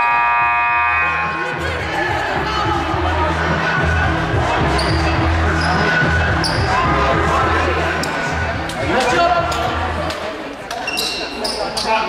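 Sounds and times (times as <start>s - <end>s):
scoreboard horn blast: 0.0s - 2.2s
background music with bass: 0.0s - 10.1s.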